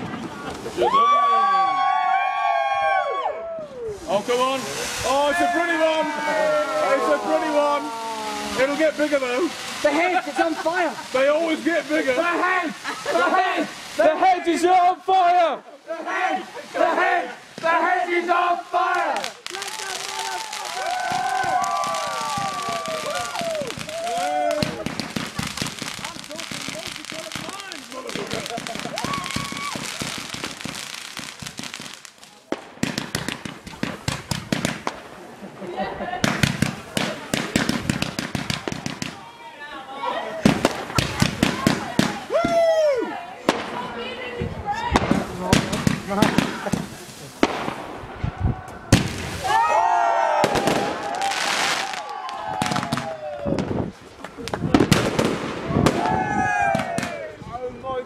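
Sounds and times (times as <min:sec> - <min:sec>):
firework cake crackling shots: 0:04.0 - 0:14.7, 0:16.2 - 0:35.6, 0:36.2 - 0:39.3, 0:40.3 - 0:57.4.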